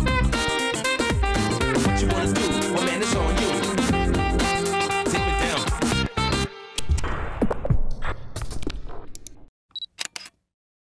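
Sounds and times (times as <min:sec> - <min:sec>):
radio jingle music: 0:02.0 - 0:04.0, 0:04.9 - 0:06.0.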